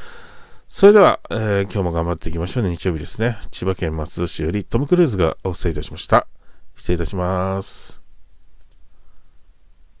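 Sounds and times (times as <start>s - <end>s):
faint low hum: 0.0s - 10.0s
computer mouse clicks: 8.6s - 8.9s.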